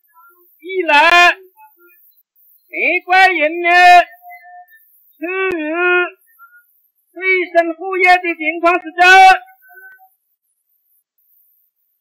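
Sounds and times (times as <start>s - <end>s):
man proclaiming on old recording: 0.6s - 1.5s, 2.8s - 4.2s, 5.2s - 6.2s, 7.2s - 10.0s.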